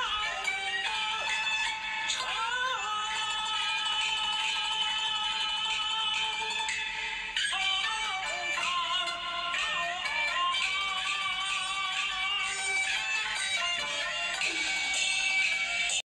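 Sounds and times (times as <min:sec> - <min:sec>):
backing music: 0:00.0 - 0:16.0
person singing: 0:00.0 - 0:16.0.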